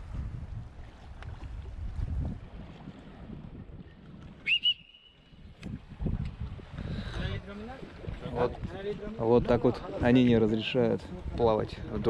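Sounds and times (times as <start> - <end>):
wind noise on microphone: 0.0 - 12.0
whistle blasts: 4.4 - 5.3.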